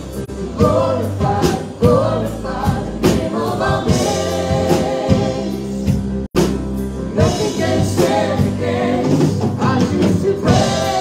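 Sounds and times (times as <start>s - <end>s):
drum kit beats: 0.0s - 11.0s.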